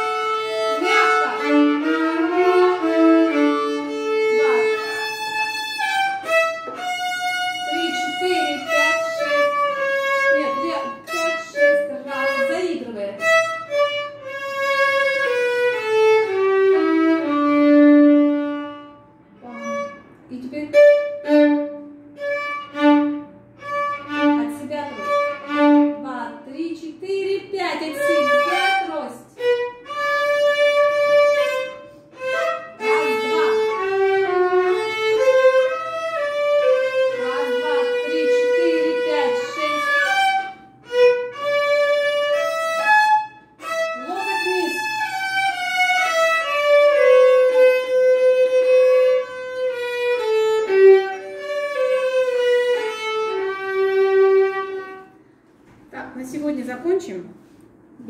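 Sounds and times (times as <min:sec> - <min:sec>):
solo violin slow melody: 0:00.0 - 0:26.1, 0:27.8 - 0:55.2.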